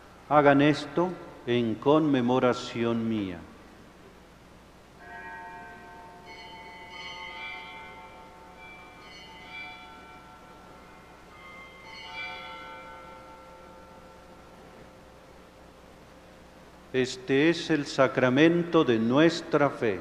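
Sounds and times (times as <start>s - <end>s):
bells ringing: 5.0s - 15.8s.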